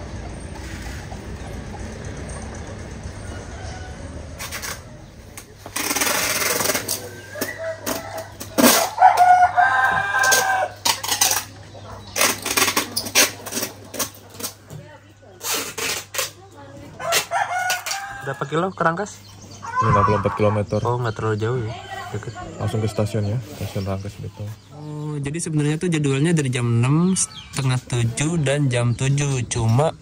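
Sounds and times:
minibus engine running: 0:00.0 - 0:06.0
rooster crowing: 0:03.0 - 0:04.5, 0:07.2 - 0:10.8, 0:17.0 - 0:18.8.

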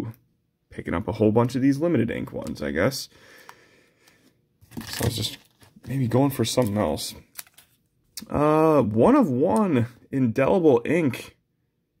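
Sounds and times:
plastic card holder rustling: 0:04.6 - 0:07.8.

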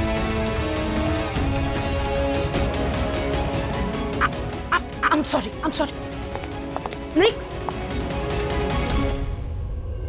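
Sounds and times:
dramatic background score: 0:00.0 - 0:10.0.

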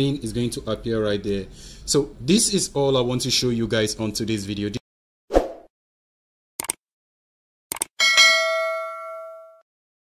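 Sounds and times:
quick double clicks: 0:06.6 - 0:06.8, 0:07.7 - 0:07.9
bell ding: 0:08.0 - 0:09.7.

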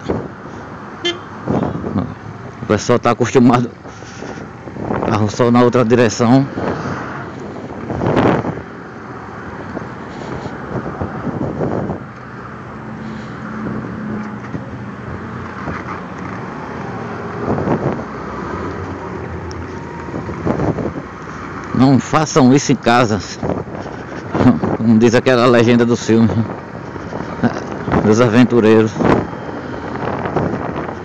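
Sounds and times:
road traffic: 0:00.0 - 0:31.0
wind rushing over microphone: 0:00.0 - 0:31.0.

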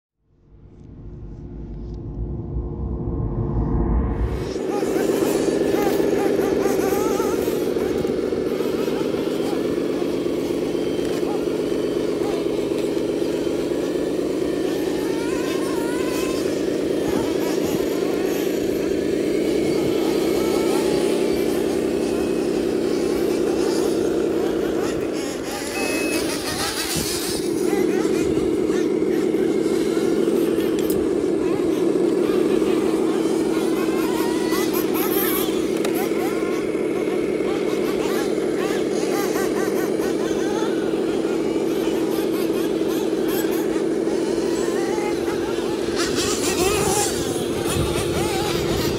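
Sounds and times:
toy truck motor drone: 0:04.5 - 0:48.9.

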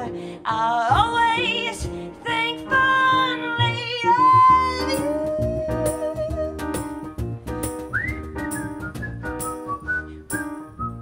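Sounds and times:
double bass: 0:00.0 - 0:11.0
cajon strikes: 0:05.0 - 0:09.7
high whistled tune: 0:07.7 - 0:11.0.

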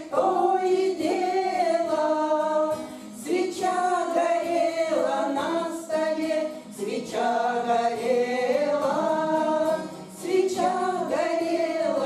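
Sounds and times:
women singing held notes: 0:00.0 - 0:12.0.

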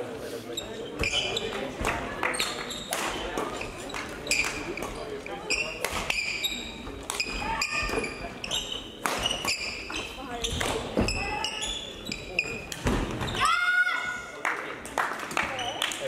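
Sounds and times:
voices echoing in hall: 0:00.0 - 0:16.0
shoe squeaks on court floor: 0:00.5 - 0:01.6, 0:02.3 - 0:13.4.

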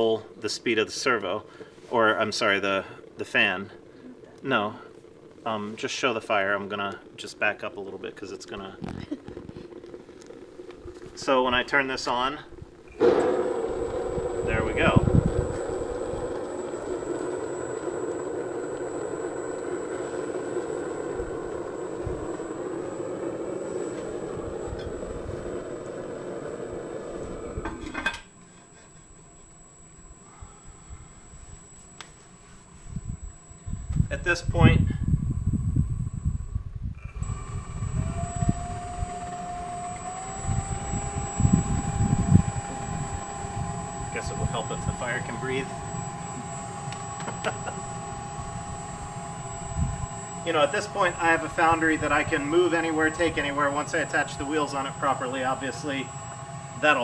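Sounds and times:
burner flame roaring: 0:00.0 - 0:57.0
electric fan whirring: 0:00.0 - 0:57.0.

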